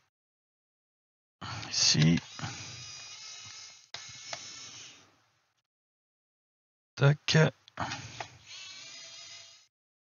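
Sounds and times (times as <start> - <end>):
electric screwdriver motor whining: 2.0 - 5.0, 8.0 - 9.7.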